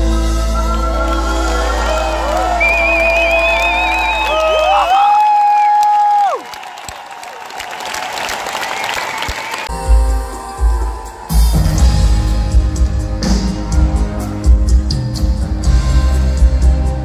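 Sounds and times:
pop-rock band playing: 0.0 - 3.6, 9.7 - 17.0
crowd cheering and applauding: 0.0 - 17.0.

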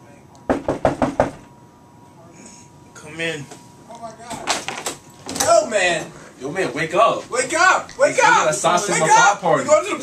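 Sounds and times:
knocks on a door: 0.5 - 1.5.

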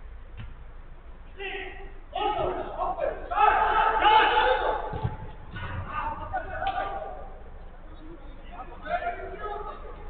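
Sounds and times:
person shouting: 1.4 - 2.7, 3.3 - 4.9.

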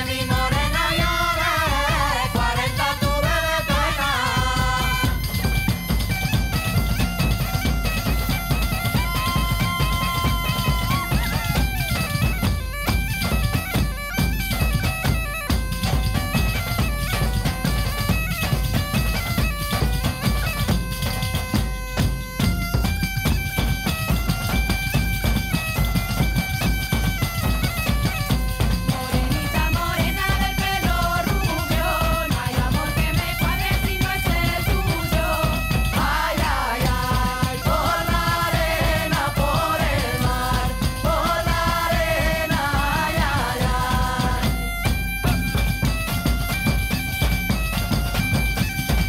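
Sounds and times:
bagpipe melody: 0.0 - 49.0
frame drums: 0.0 - 49.0.

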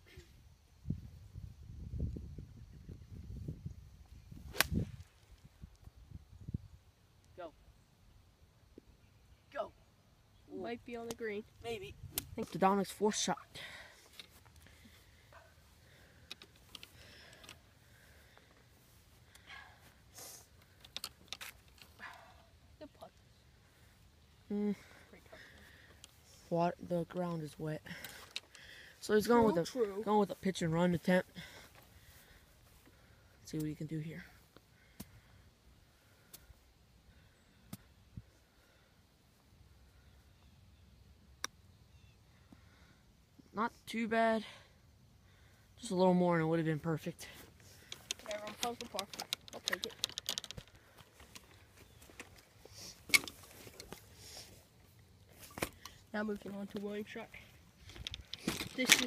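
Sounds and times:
golf club striking ball: 4.5 - 5.1.

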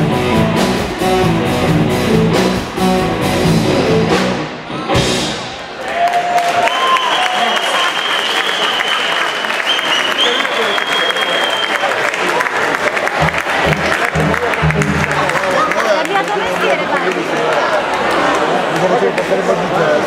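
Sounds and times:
live band playing: 0.0 - 5.8, 12.8 - 17.1
audience applauding and cheering: 5.5 - 20.0.

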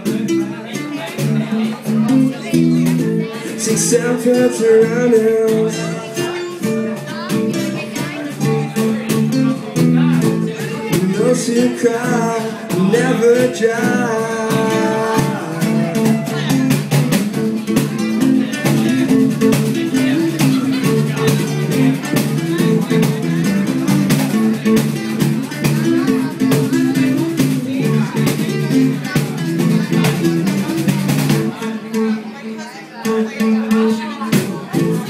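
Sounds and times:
electric bass guitar: 0.0 - 32.4
acoustic guitars strumming: 0.0 - 35.0.

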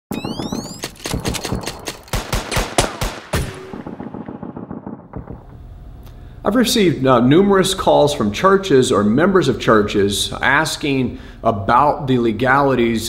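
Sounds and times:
rapid gunshots: 0.1 - 5.6.

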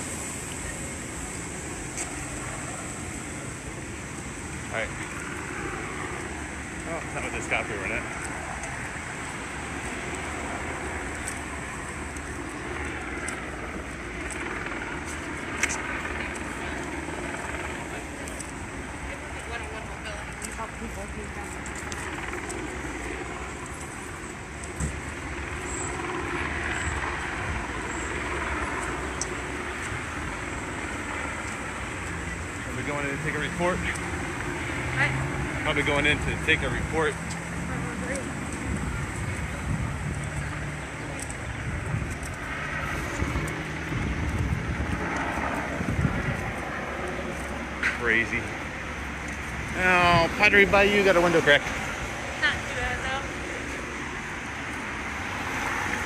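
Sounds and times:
cars passing: 0.0 - 56.0.

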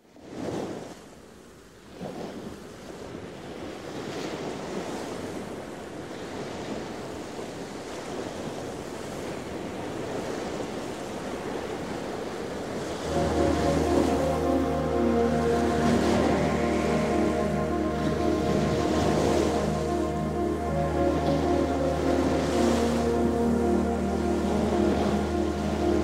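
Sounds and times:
ocean surf washing in: 13.0 - 26.0
synthesizer music: 13.0 - 26.0.

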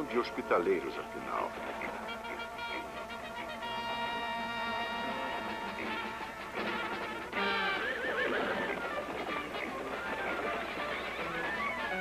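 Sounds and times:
background music: 0.0 - 12.0
horse whinnying: 4.8 - 12.0.

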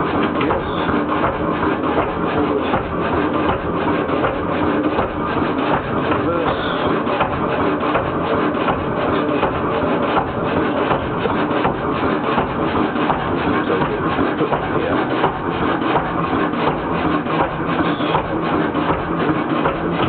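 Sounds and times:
diesel engine clattering: 0.0 - 20.0.

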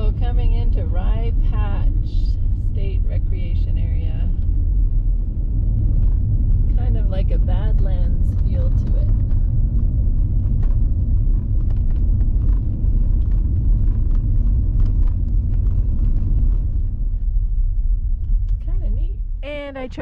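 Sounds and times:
car cabin road and engine rumble: 0.0 - 20.0.

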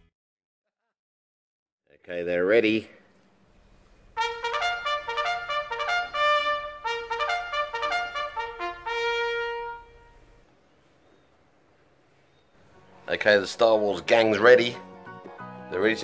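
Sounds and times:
trumpet fanfare: 4.2 - 10.4.

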